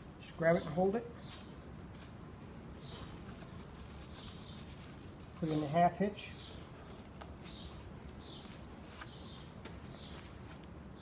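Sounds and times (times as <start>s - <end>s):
nylon string and plastic bag handling: 1.3s - 10.8s.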